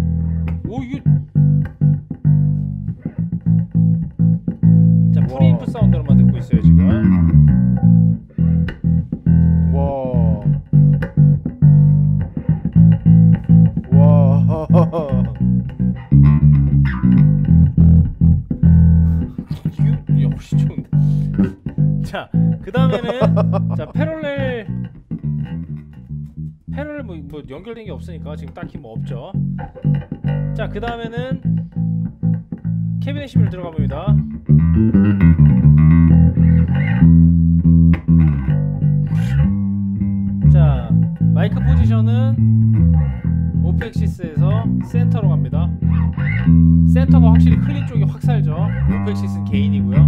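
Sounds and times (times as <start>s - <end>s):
plucked electric bass guitar: 0.0s - 50.0s.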